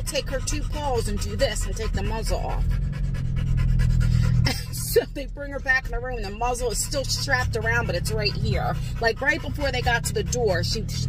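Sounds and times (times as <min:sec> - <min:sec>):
car cabin hum: 0:00.0 - 0:03.1, 0:03.8 - 0:11.0
dog panting: 0:00.0 - 0:11.0.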